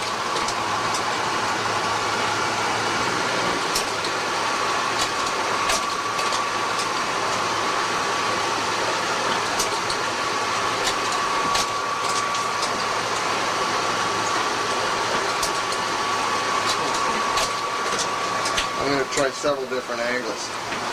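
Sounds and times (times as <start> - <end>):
photocopier mechanical whir: 0.0 - 20.9
thin high whine: 0.0 - 20.9.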